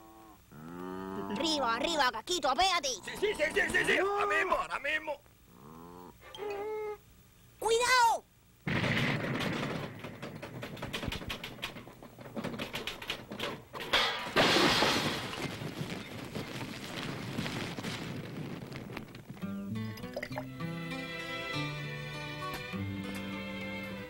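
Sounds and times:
loud noisy crash: 8.7s - 11.2s, 13.9s - 18.8s
rapid cartoon clicks and rattles: 8.7s - 14.0s
soft melodic music: 19.6s - 24.0s.

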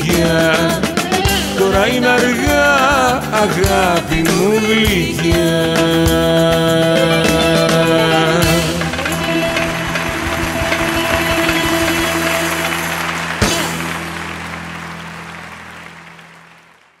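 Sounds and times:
live band playing: 0.0s - 16.5s
low drum strikes: 8.3s - 14.0s.

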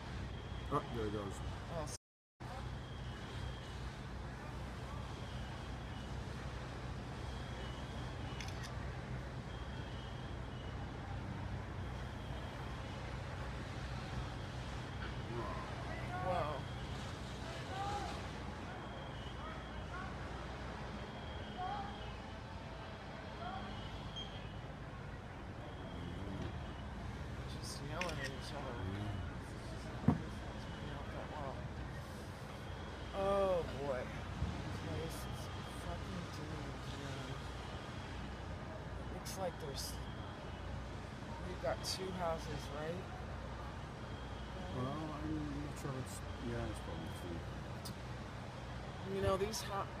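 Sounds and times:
distant voices: 0.0s - 50.0s
fire engines rumbling: 0.0s - 50.0s
faint high-pitched beep: 7.2s - 8.7s, 21.0s - 22.3s, 23.4s - 24.7s, 44.0s - 48.0s.

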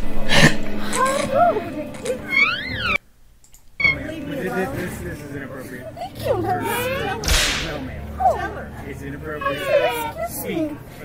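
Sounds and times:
sharp swish: 7.2s - 7.9s.

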